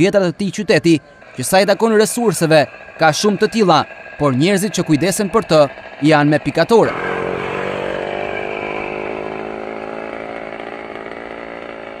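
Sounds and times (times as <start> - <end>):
motor engine running: 0.0 - 12.0.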